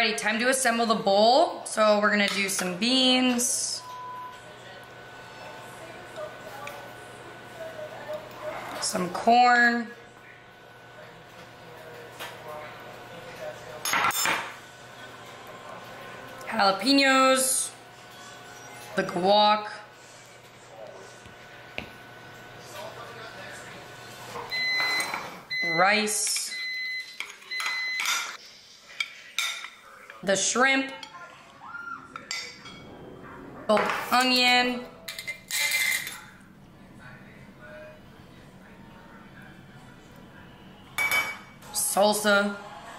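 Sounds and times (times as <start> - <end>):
spoon and dishware clatter: 35.1 - 36.3.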